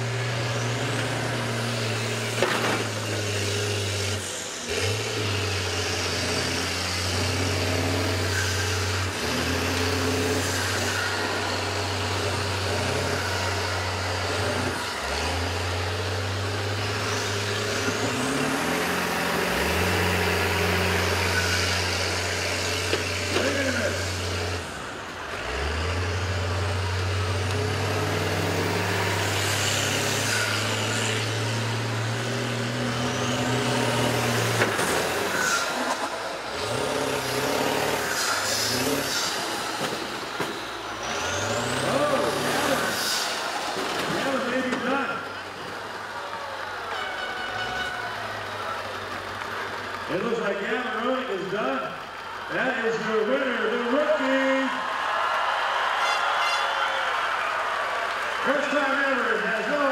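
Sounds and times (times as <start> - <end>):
bus engine revving under load: 0.0 - 55.9.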